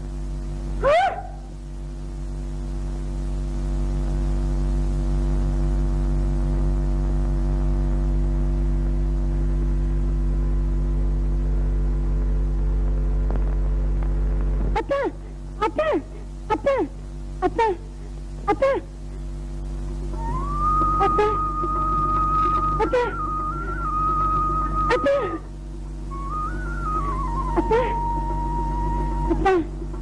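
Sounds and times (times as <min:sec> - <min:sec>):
steady low hum: 0:00.0 - 0:30.0
voiced exclamation: 0:14.8 - 0:17.9, 0:20.2 - 0:24.0, 0:24.6 - 0:25.5, 0:27.4 - 0:29.7.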